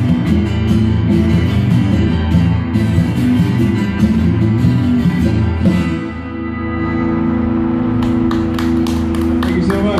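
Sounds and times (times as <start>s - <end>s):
guitars sustaining a chord: 0.0s - 9.9s.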